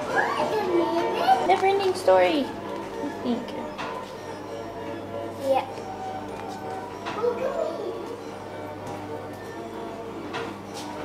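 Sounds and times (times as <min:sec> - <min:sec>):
child talking: 0:00.1 - 0:02.0, 0:05.4 - 0:05.8, 0:07.2 - 0:08.1.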